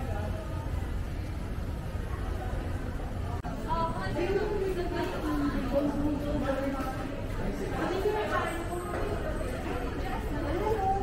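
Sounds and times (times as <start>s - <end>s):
low background hum: 0.0s - 11.0s
people talking and chattering: 0.0s - 11.0s.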